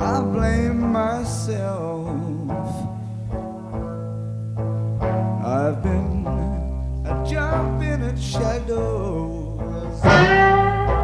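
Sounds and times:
bass guitar: 0.0s - 11.0s
electric guitar notes: 0.0s - 11.0s.

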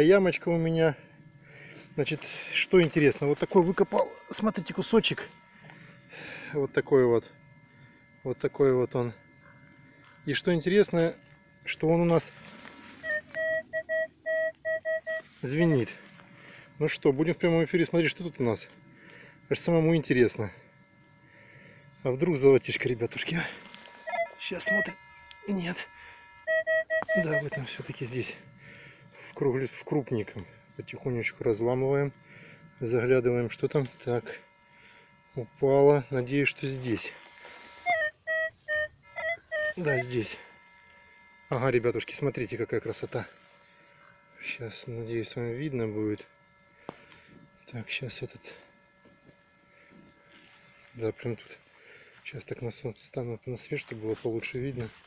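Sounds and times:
metal detector beeping: 0.0s - 46.3s.

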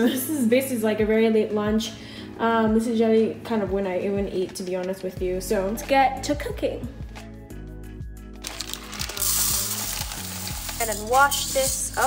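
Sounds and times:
background music: 0.0s - 12.0s
hand stirring dry rice in pot: 8.5s - 12.0s.

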